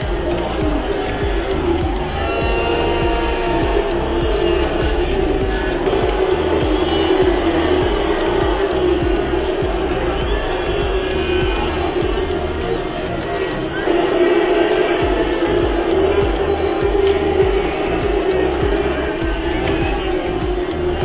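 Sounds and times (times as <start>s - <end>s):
electronic music with steady beat: 0.0s - 21.0s.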